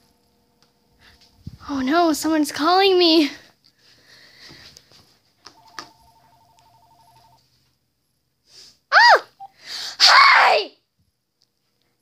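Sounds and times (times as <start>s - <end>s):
phone ringing with two-tone trill: 5.5s - 7.4s
high-pitched vocal squeals: 8.9s - 10.7s.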